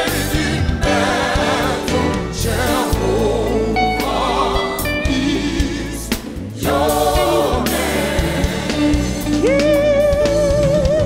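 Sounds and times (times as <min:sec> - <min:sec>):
gospel band playing: 0:00.0 - 0:11.0
vocal group singing in harmony: 0:00.0 - 0:11.0.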